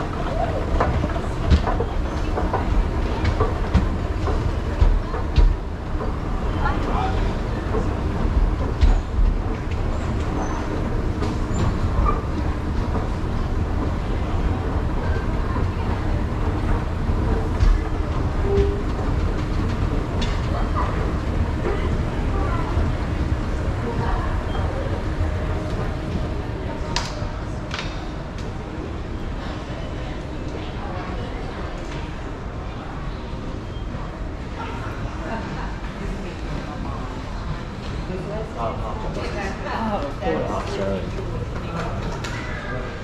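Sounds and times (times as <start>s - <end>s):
escalator rumbling: 0.0s - 26.9s
faint voices: 0.0s - 43.0s.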